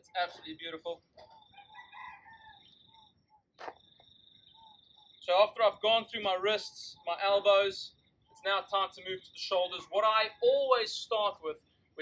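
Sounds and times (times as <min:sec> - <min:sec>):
rooster crowing: 0:01.3 - 0:03.1.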